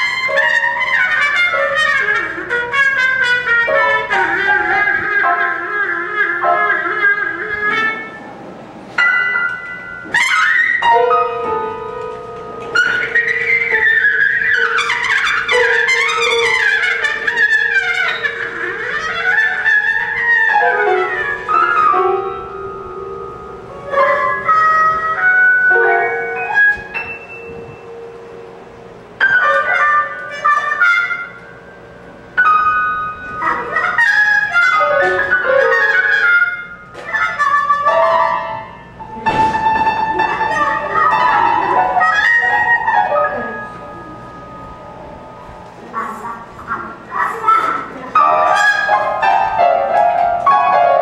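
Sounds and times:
trumpet playing held notes: 0.0 - 8.3, 9.0 - 28.4, 29.2 - 46.2, 48.2 - 51.0
sharp piano chords: 0.0 - 51.0.

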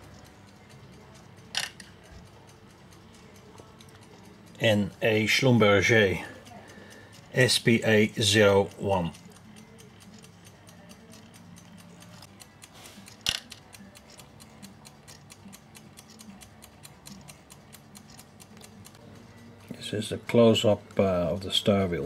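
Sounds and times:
fast mechanical ticking: 0.0 - 22.0
sharp click: 9.2 - 19.0.

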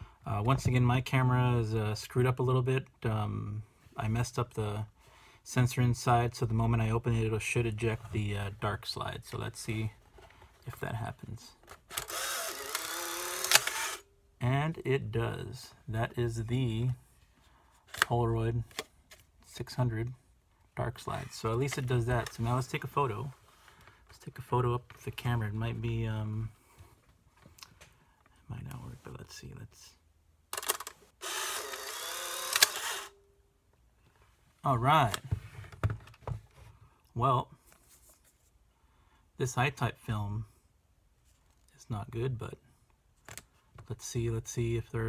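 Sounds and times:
man speaking: 0.3 - 4.9, 5.5 - 10.0, 10.6 - 11.6, 14.4 - 17.0, 18.0 - 18.7, 19.5 - 20.2, 20.8 - 23.4, 24.1 - 26.6, 28.4 - 30.0, 34.6 - 35.2, 41.8 - 42.6
camera mechanism clicks: 11.9 - 14.0, 30.6 - 33.1
camera film ejection motor whirring: 11.9 - 14.1, 30.6 - 33.2.

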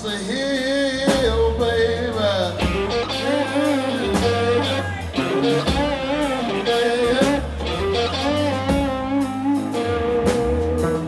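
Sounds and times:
bass guitar: 0.0 - 11.0
drum kit: 0.0 - 11.0
electric guitar lead with bent notes: 2.0 - 11.0.

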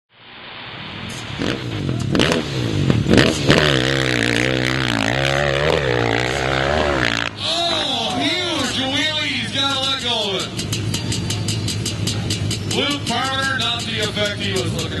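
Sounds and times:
engine rising and falling: 0.2 - 15.0
dirt bike engine at full throttle: 1.0 - 15.0
engine pops: 9.7 - 15.0.

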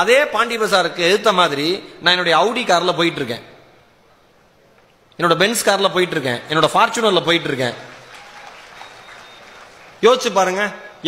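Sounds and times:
audience applauding: 7.3 - 10.9.

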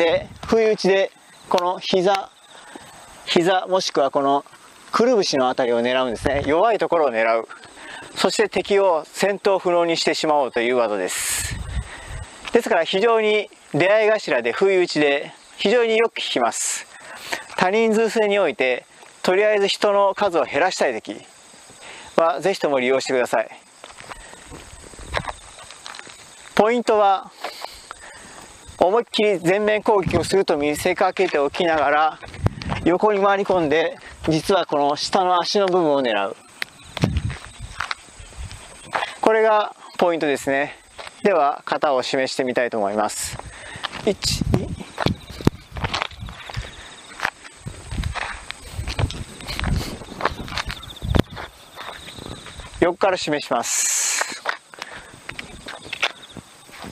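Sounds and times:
sneakers shifting on asphalt: 23.7 - 26.6, 30.2 - 34.5, 43.1 - 52.8, 54.1 - 56.9.

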